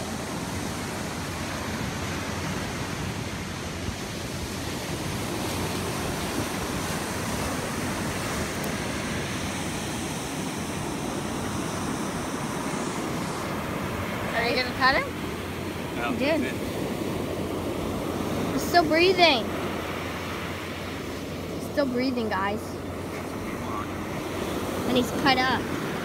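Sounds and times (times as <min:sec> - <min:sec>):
ocean surf: 0:00.0 - 0:26.0
wind: 0:00.0 - 0:26.0.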